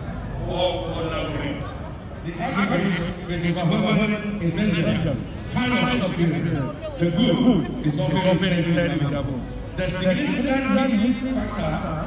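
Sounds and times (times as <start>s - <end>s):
man speaking over public address: 0.3s - 12.0s.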